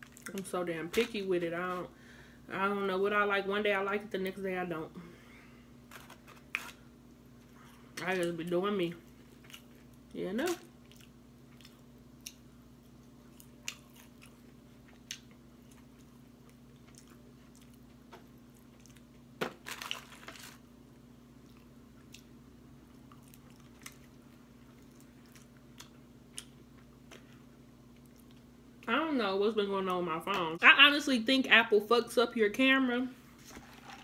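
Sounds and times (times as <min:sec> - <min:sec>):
faint low hum: 0:00.0 - 0:34.0
chewing crispy fried chicken: 0:10.8 - 0:12.5, 0:13.1 - 0:20.6, 0:21.3 - 0:28.5.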